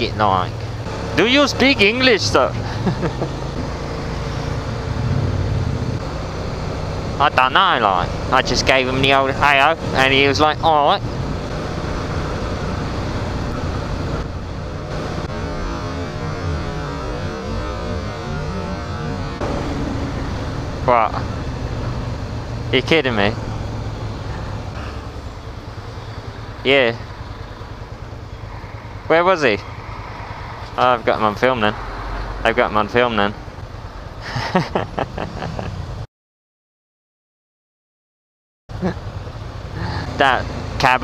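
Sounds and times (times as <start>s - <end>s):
road and wind noise: 0.0s - 36.1s, 38.7s - 41.0s
motorcycle engine running: 0.5s - 31.4s.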